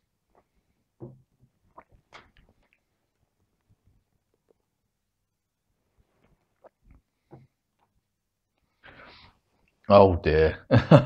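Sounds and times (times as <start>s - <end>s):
faint sipping and swallowing: 0.2s - 4.7s, 5.8s - 8.0s.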